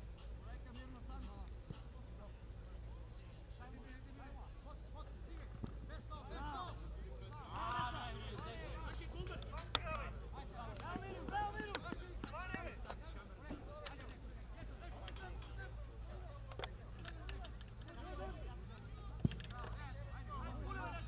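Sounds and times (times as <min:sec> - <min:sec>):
players shouting: 0:06.3 - 0:13.7.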